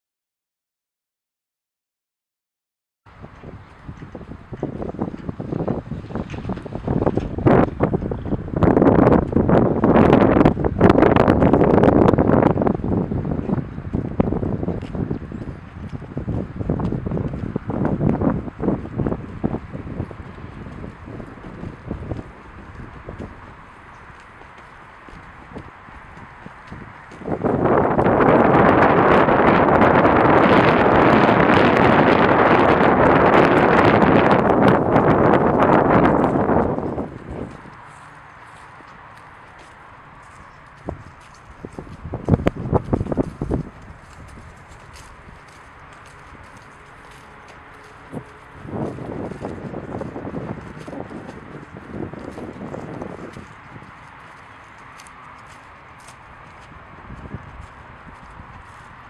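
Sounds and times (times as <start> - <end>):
wind on microphone: 3.1 - 59.0.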